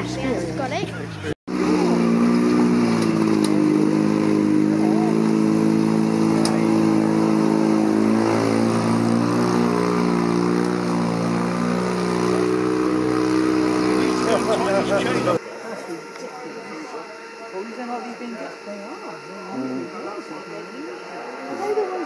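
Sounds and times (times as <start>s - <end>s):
car engine running hard: 0.0s - 15.4s.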